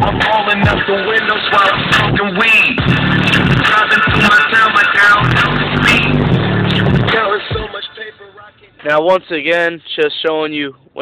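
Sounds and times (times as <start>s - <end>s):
hip hop song with rapping: 0.0s - 9.7s.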